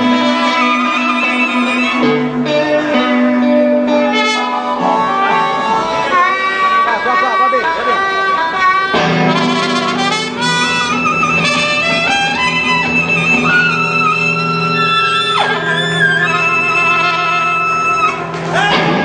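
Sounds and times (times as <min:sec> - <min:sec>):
blues band holding a chord: 0:00.0 - 0:19.0
sustained lead guitar notes: 0:00.0 - 0:19.0.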